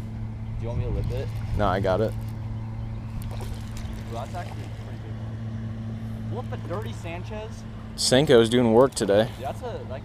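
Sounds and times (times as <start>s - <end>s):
low motor hum: 0.0s - 10.0s
fish splashing in water: 3.0s - 5.0s.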